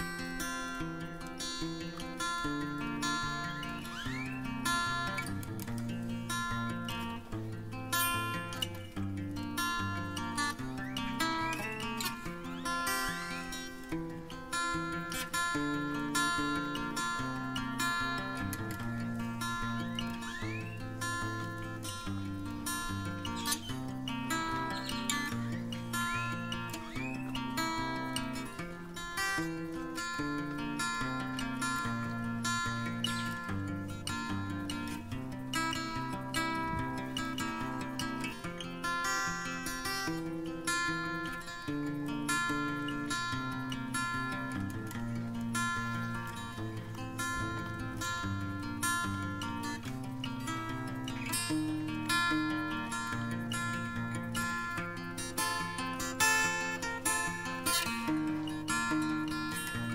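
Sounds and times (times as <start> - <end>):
acoustic guitar music: 0.0 - 59.9.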